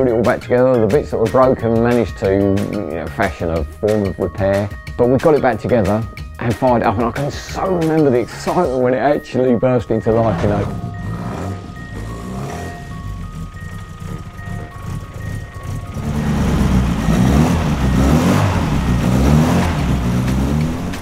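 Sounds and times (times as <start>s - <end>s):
mallet percussion melody: 5.8s - 21.0s
car engine idling and revving: 9.9s - 21.0s.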